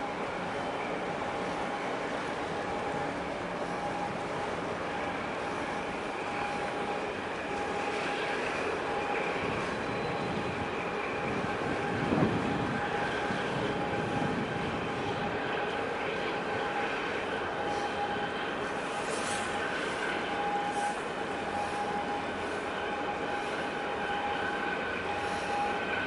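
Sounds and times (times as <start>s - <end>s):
mechanical drone: 0.0s - 26.0s.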